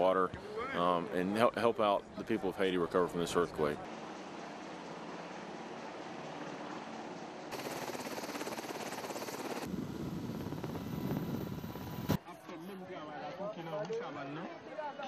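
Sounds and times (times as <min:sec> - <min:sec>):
steady outdoor hiss: 0:01.0 - 0:13.0
helicopter rotor chop: 0:05.5 - 0:12.2.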